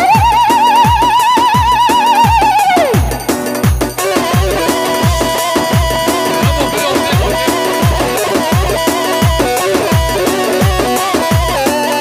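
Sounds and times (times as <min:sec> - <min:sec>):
electronic beat: 0:00.0 - 0:12.0
synth melody: 0:00.0 - 0:12.0.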